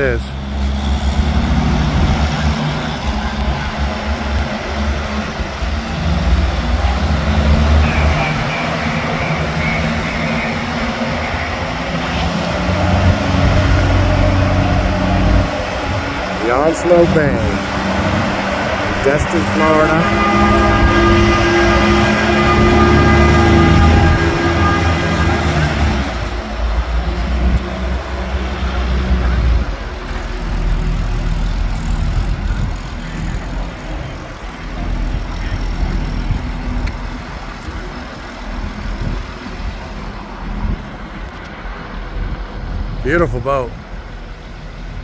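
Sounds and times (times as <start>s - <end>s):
forklift engine running: 0.0s - 43.0s.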